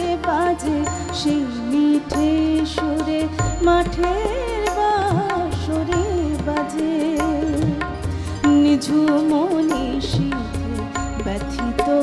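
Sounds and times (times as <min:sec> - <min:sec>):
harmonium: 0:00.0 - 0:12.0
percussion strokes: 0:00.0 - 0:12.0
woman singing: 0:00.0 - 0:12.0.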